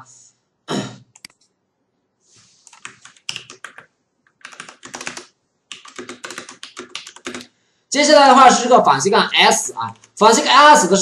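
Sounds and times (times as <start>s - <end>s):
typing on computer keyboard: 1.1s - 1.5s, 2.7s - 7.5s.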